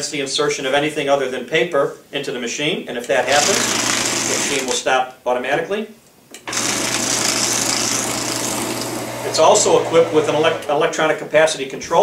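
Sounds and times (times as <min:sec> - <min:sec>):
shredder motor humming: 0:03.3 - 0:04.7, 0:06.5 - 0:10.8.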